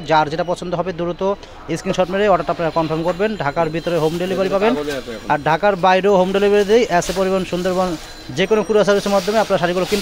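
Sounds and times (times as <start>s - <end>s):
person talking fast: 0.0s - 10.0s.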